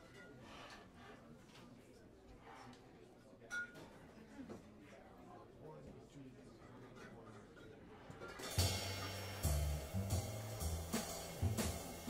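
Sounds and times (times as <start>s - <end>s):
drum kit hits: 8.4s - 12.0s
upright bass notes: 8.6s - 12.0s.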